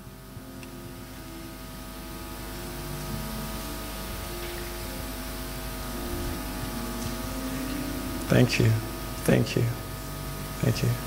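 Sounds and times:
low steady hum: 0.0s - 11.0s
soft keyboard chords: 0.0s - 11.0s.

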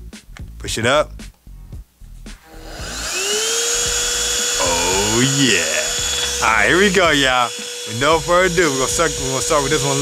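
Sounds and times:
handheld vacuum motor whirring: 2.4s - 10.0s.

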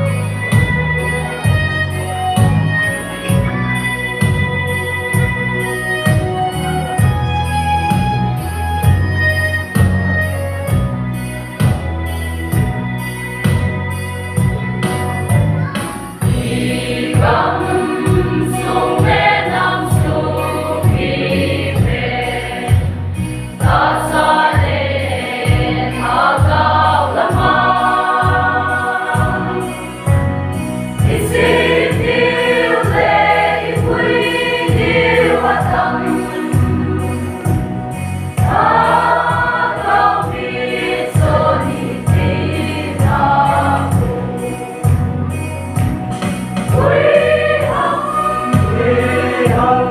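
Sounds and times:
choir singing gospel: 16.2s - 49.9s
steady low beat: 16.2s - 49.9s.

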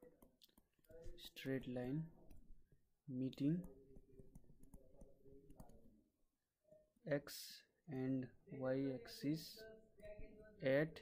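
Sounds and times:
stylus tapping on tablet screen: 0.0s - 6.0s.

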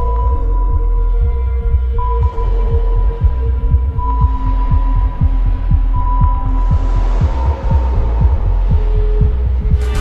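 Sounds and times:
rapid throbbing low pulse: 0.0s - 10.0s.

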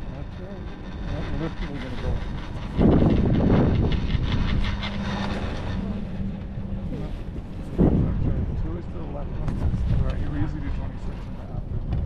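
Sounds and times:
loud rush: 0.0s - 11.4s
low steady hum: 0.0s - 12.0s
wind on microphone: 0.0s - 12.0s.

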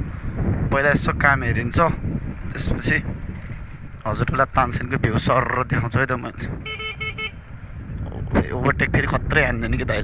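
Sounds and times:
motorcycle horn beeps: 6.6s - 7.5s.

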